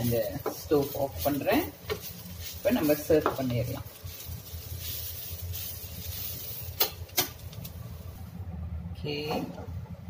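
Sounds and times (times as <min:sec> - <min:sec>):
wooden spatula scraping frying pan: 0:00.0 - 0:07.0
low steady hum: 0:00.0 - 0:10.0.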